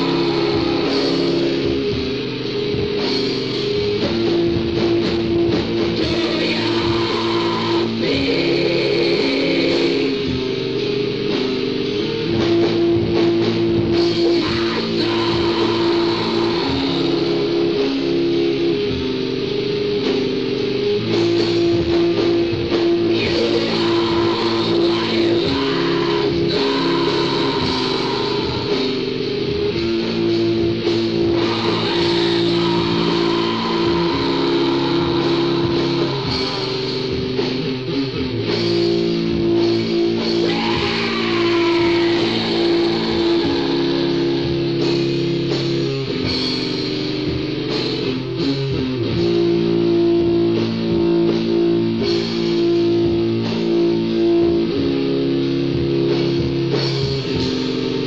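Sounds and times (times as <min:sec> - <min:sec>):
electric guitar and bass chords: 0:00.0 - 0:58.0.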